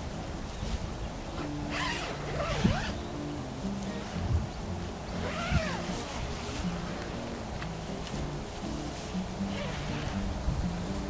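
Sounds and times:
tent zipper being pulled open: 1.4 - 3.1, 5.1 - 7.4, 9.4 - 11.0.

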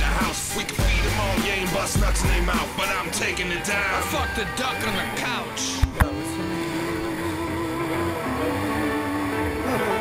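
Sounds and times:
jet ski engine whining: 0.0 - 10.0.

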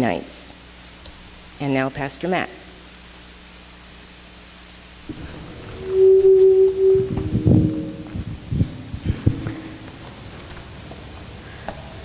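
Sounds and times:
steady hum-like tone: 5.0 - 12.0.

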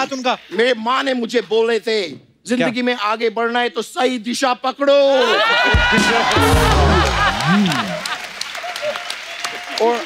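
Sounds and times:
studio audience applauding: 5.3 - 10.0
short music cue: 5.9 - 8.0.

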